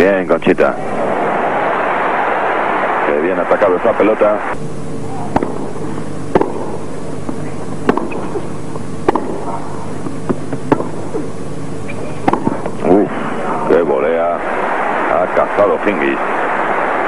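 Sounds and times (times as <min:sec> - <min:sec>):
low hum: 0:00.6 - 0:17.0
racket striking tennis ball: 0:05.3 - 0:11.3, 0:12.2 - 0:12.7
tennis ball bouncing: 0:05.3 - 0:11.3, 0:12.2 - 0:12.7.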